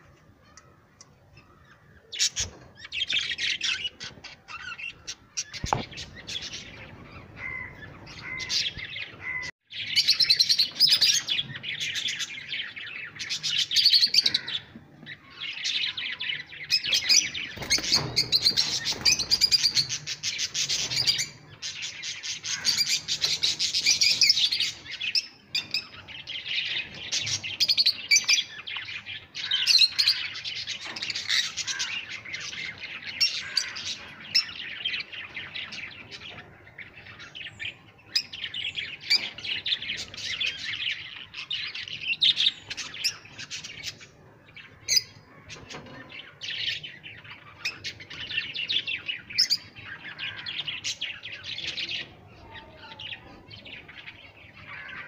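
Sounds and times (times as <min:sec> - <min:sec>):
lovebirds chirping and chattering: 0:00.0 - 0:55.0.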